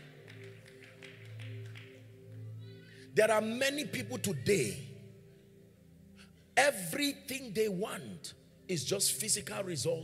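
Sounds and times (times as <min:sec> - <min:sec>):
quiet keyboard music: 0:00.0 - 0:10.0.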